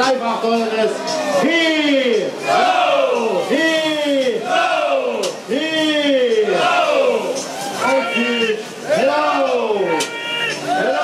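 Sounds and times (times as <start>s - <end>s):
crowd shouting a cheer in unison: 2.4s - 5.4s, 6.3s - 11.0s.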